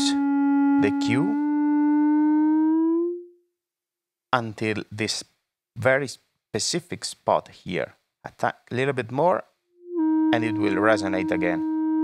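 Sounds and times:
synth filter tone: 0.0 - 3.2, 9.8 - 12.0.

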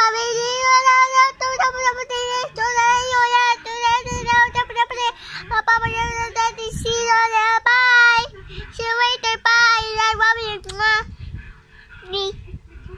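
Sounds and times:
girl singing: 0.0 - 11.1.

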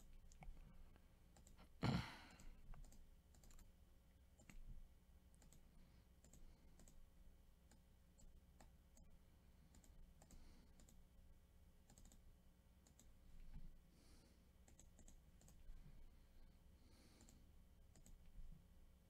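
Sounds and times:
low steady hum: 0.0 - 19.0
computer mouse clicks: 1.3 - 1.6, 2.3 - 3.7, 4.3 - 4.7, 5.3 - 5.6, 6.2 - 7.0, 7.6 - 11.0, 11.8 - 13.6, 14.6 - 15.7, 17.1 - 18.4.

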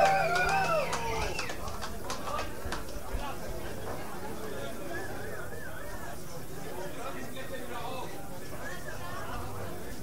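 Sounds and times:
low crowd chatter: 0.0 - 10.0.

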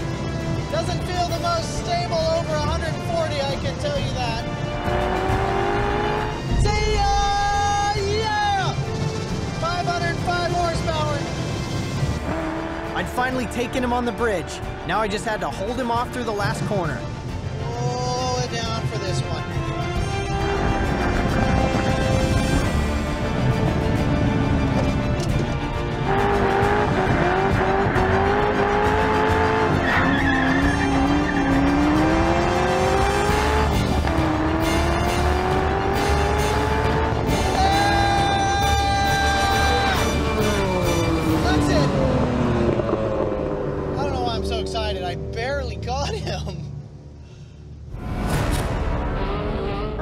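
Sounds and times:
car engine revving hard: 4.8 - 6.5, 12.0 - 13.5, 26.0 - 38.3
tyres squealing: 29.6 - 32.3.

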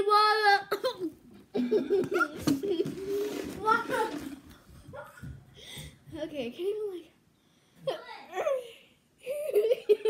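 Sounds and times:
girl talking: 3.6 - 4.3, 6.1 - 7.2, 7.9 - 8.8.

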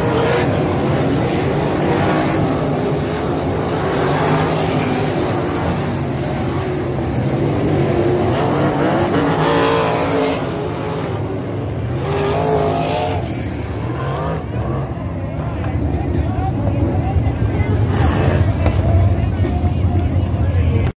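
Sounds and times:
race car engines running hard: 0.0 - 20.9.

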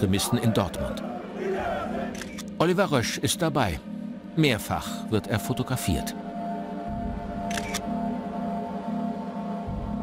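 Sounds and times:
droning background music: 0.0 - 10.0
camera shutter clicking: 7.5 - 7.9.

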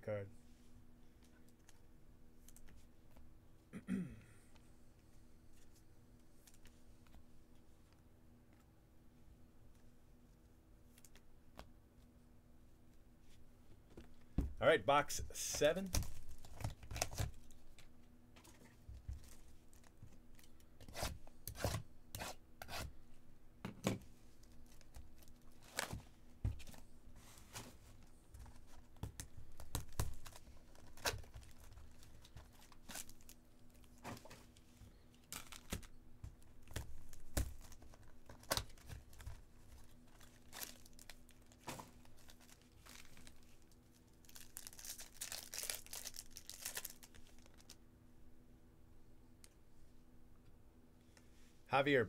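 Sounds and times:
plastic wrap crinkling and tearing: 29.4 - 34.0, 35.2 - 36.0, 36.6 - 47.8
foil packs rustling: 29.5 - 34.6, 36.6 - 47.8.

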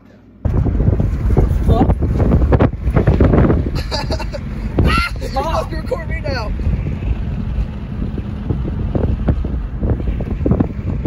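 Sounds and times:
road noise inside car: 0.0 - 11.0
wind buffeting car: 0.4 - 11.0.

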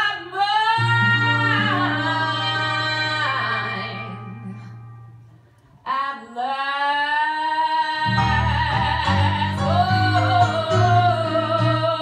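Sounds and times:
woman singing with vibrato: 0.0 - 5.1, 5.8 - 12.0.

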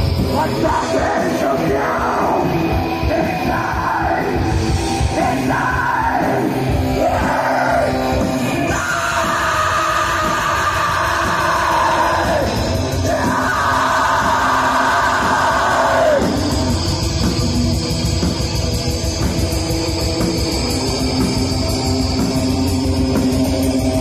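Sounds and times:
black metal band playing live: 0.0 - 24.0
distorted guitars: 0.0 - 24.0
fast drums: 0.0 - 24.0
vocalist screaming: 5.1 - 16.7.

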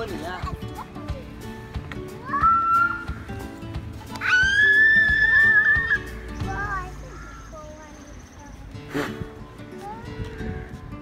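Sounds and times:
background music: 0.0 - 11.0
child squealing: 2.2 - 3.1, 4.1 - 6.1.

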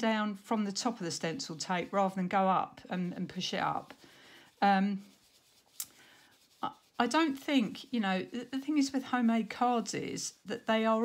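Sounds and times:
foam dauber rubbing on card: 3.0 - 11.0.

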